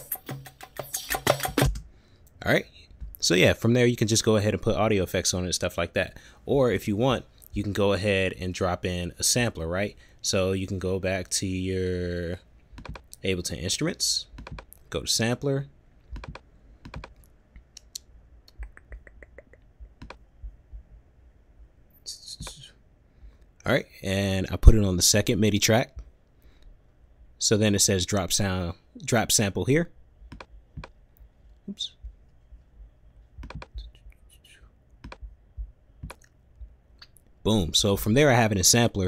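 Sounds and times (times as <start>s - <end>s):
mouse and keyboard clicks: 0.0s - 1.8s, 12.8s - 13.2s, 14.4s - 14.8s, 16.1s - 20.2s, 30.3s - 31.0s, 33.4s - 33.9s, 35.0s - 35.3s, 36.0s - 36.3s.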